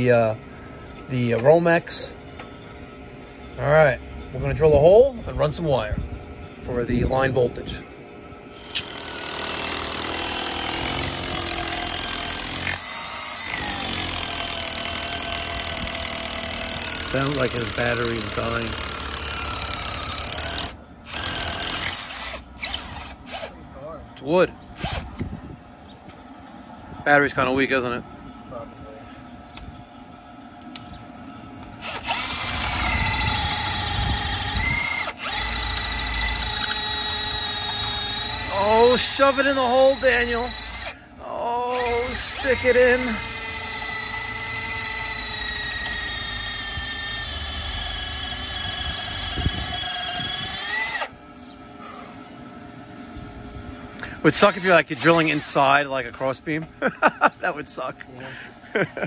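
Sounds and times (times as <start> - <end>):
rotary hammer drilling brick: 8.5 - 23.5, 24.8 - 25.2, 31.8 - 41.0, 41.7 - 51.1, 54.3 - 55.6.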